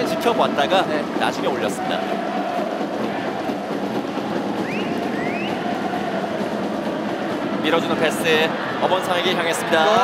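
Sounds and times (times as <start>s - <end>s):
crowd rising calls: 0.0s - 10.0s
stadium crowd noise: 0.0s - 10.0s.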